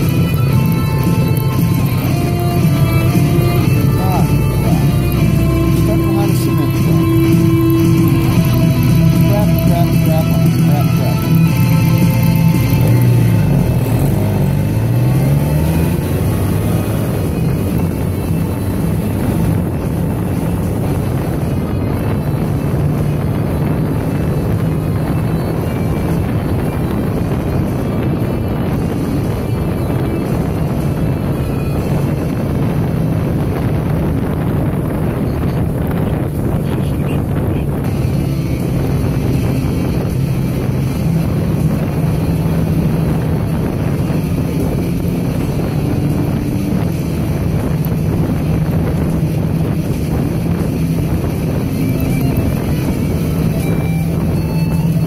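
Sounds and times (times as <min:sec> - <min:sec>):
road noise: 0:00.0 - 0:55.0
vehicle engine pulling away: 0:00.0 - 0:55.0.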